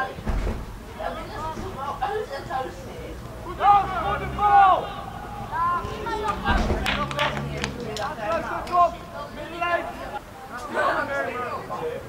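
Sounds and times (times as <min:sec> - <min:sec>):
people shouting calls: 0:03.3 - 0:10.2
sharp knocks: 0:05.8 - 0:07.2.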